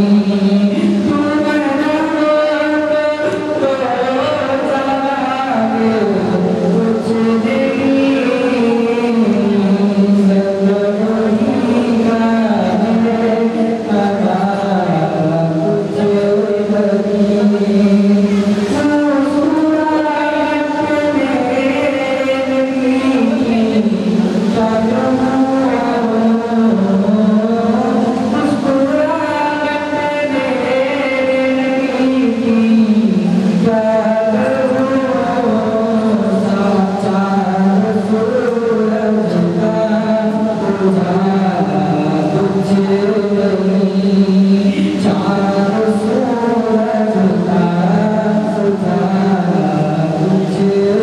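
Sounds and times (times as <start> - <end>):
man singing long note: 0.0 - 51.0.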